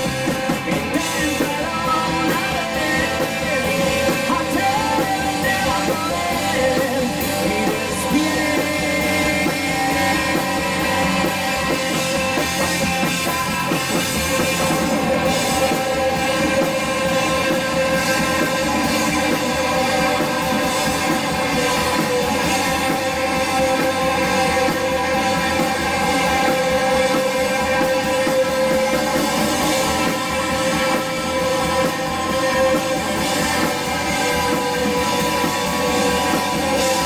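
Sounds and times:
bass guitar: 0.0 - 37.0
drum kit: 0.0 - 37.0
electric guitar: 0.0 - 37.0
rock band playing: 0.0 - 37.0.

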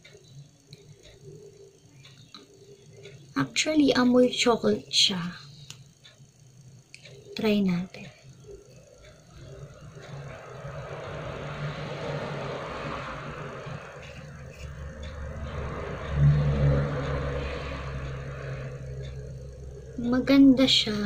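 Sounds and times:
vehicle engine passing: 9.4 - 21.0.

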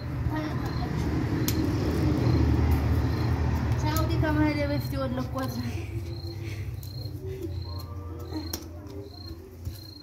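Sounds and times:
cricket chirping: 0.0 - 3.6, 4.3 - 10.0.

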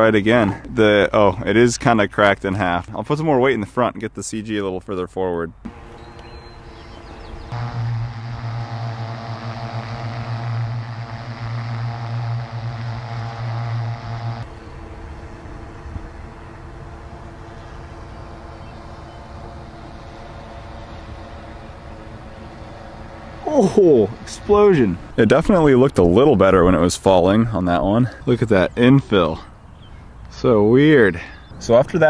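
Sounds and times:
drone propeller hum: 5.7 - 25.2.

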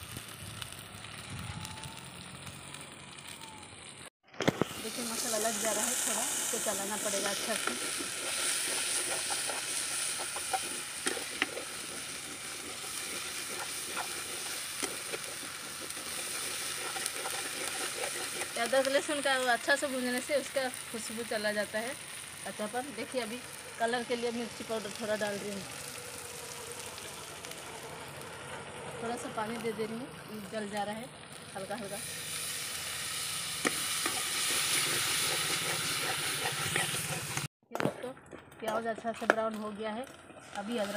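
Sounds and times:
spices sizzling in oil: 0.0 - 37.5, 38.6 - 40.9
metal ladle scraping pan: 7.0 - 18.6, 33.6 - 37.5.

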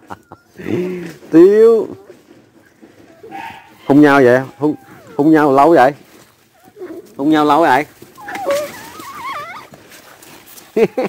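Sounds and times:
dog whining: 1.8 - 10.2
person laughing: 10.7 - 11.0.

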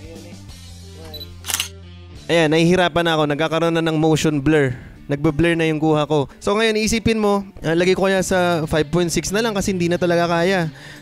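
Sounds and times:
quiet background music: 0.0 - 11.0
camera shutter click: 1.1 - 1.8.

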